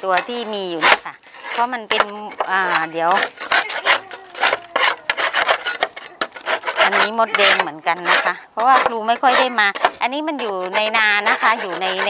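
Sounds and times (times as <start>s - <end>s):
scraping inside wooden box: 0.0s - 12.0s.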